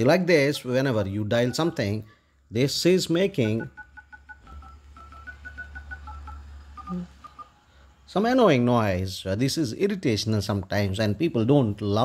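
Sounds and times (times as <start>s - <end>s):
phone dial pad beeps: 1.4s - 2.1s, 3.2s - 7.7s.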